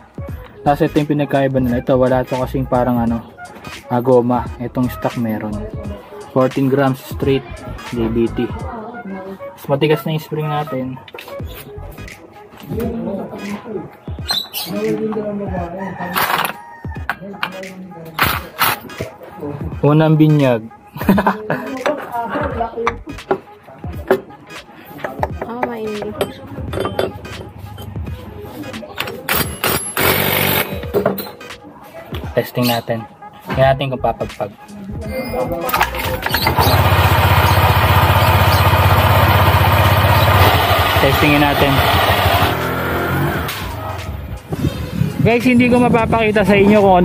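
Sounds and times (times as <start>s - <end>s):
motorcycle engine revving: 36.0s - 44.3s
loud rattling burst: 36.4s - 42.9s.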